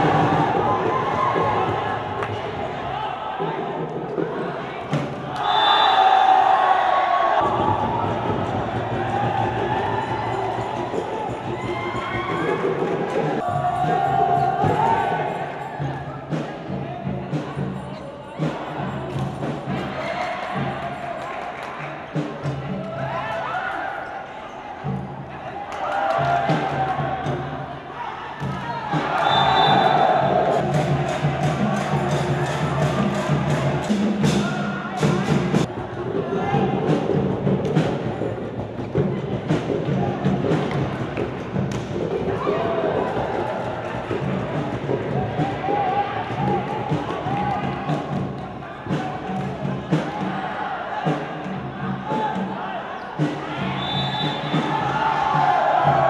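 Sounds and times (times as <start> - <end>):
crowd shouting and cheering: 0.0 - 56.0
music: 0.0 - 56.0.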